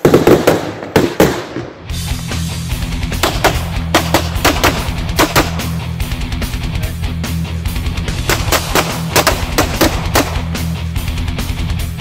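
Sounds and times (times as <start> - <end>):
pistol shots: 0.0 - 1.8, 3.2 - 5.8, 8.2 - 10.6
heavy metal music: 1.8 - 12.0.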